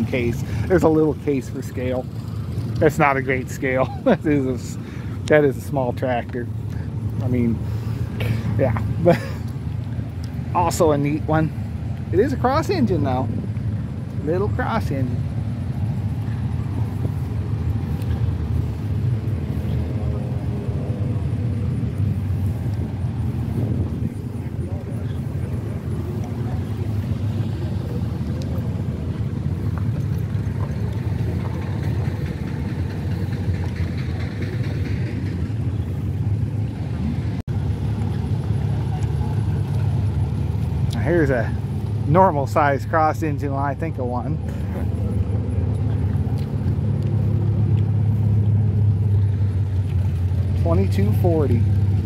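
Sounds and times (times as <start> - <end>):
low engine rumble: 0.0 - 52.0
faint voices: 23.2 - 35.2.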